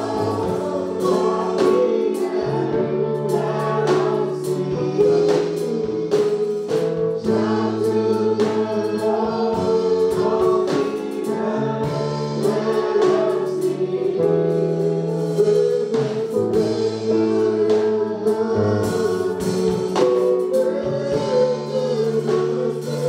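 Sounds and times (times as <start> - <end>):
bass line: 0.0 - 23.0
drums: 0.0 - 23.0
group singing gospel in harmony: 0.0 - 23.0.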